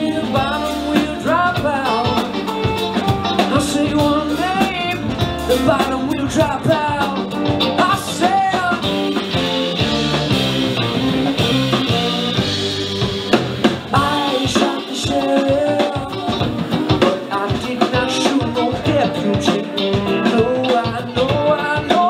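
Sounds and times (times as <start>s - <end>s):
man singing: 0.0s - 2.8s, 3.4s - 10.1s, 13.9s - 22.0s
live band playing reggae rock: 0.0s - 22.0s.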